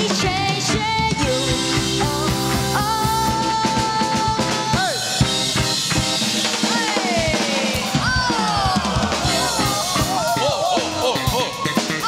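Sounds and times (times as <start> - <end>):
bass: 0.0 - 12.0
drum kit beat: 0.0 - 12.0
electric guitar: 0.0 - 12.0
keyboard: 0.0 - 12.0.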